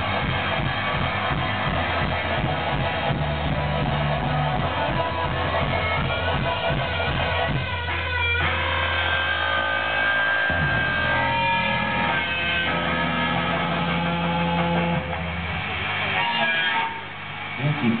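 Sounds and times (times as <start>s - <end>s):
live rock band: 0.0s - 18.0s.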